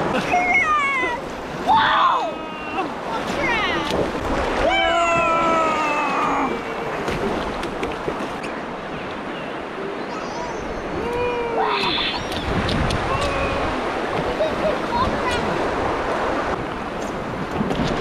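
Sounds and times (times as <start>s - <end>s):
river water rushing: 0.0s - 18.0s
person calling out: 11.0s - 12.2s.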